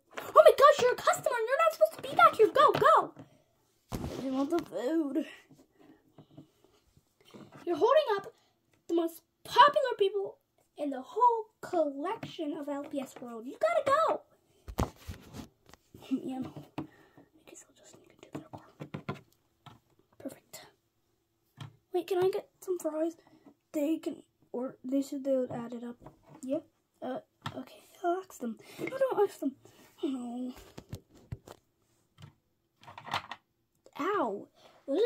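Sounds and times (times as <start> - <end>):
soft whispering: 17.3 - 18.9, 20.2 - 20.8.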